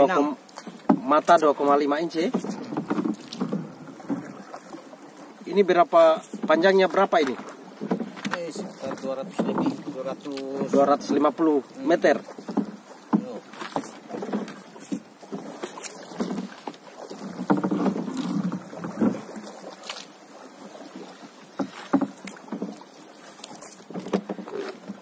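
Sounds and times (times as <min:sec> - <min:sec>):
paddle knocking and splashing: 0:00.0 - 0:25.0.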